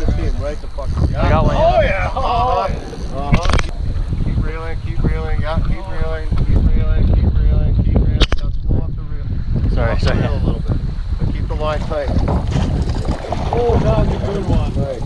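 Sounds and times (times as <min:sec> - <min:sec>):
indistinct talking: 0:00.0 - 0:06.9
wind buffeting microphone: 0:00.0 - 0:15.0
sharp clicks: 0:02.8 - 0:03.7.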